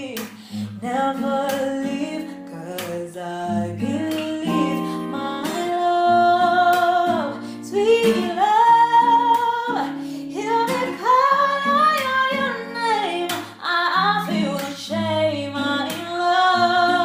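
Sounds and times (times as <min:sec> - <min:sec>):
plucked acoustic guitar: 0:00.0 - 0:17.0
woman singing slow song: 0:00.0 - 0:17.0.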